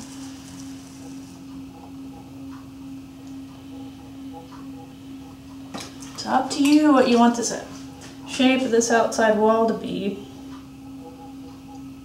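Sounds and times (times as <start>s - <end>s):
potter's wheel humming: 0.0s - 12.0s.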